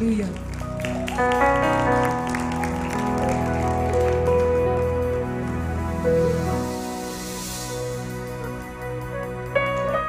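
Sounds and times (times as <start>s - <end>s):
scattered applause: 0.0s - 5.7s
worship band playing: 0.7s - 10.0s.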